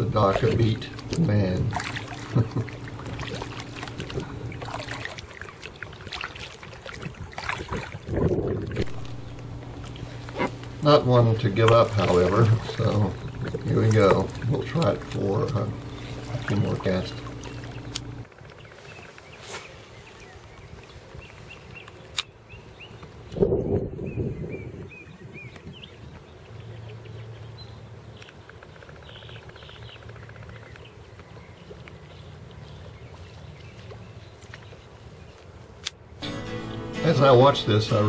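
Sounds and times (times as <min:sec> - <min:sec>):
guitar music: 0:08.8 - 0:12.1, 0:36.2 - 0:38.0
small clicks: 0:17.3 - 0:18.6.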